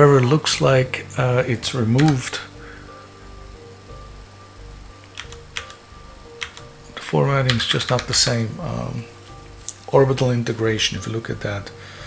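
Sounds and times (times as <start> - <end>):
faint background music: 0.0 - 12.0
computer keyboard key clicks: 6.4 - 6.7.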